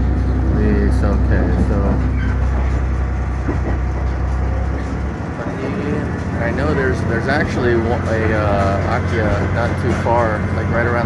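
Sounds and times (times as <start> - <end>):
railcar rumbling along track: 0.0 - 11.0.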